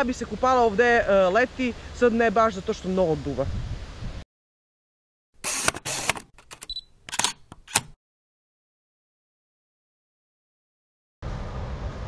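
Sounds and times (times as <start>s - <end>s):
camera shutter clicking: 5.4s - 8.0s
high beep: 6.7s - 6.9s.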